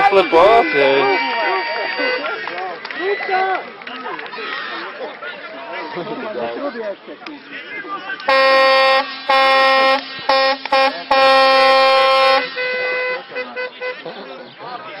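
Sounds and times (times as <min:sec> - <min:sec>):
horn blasts: 0:00.0 - 0:02.4, 0:08.3 - 0:14.0
people talking: 0:00.0 - 0:15.0
people laughing: 0:12.6 - 0:15.0.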